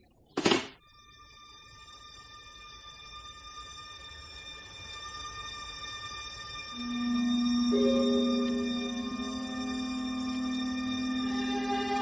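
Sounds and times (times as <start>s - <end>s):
high held musical tone: 6.6s - 12.0s.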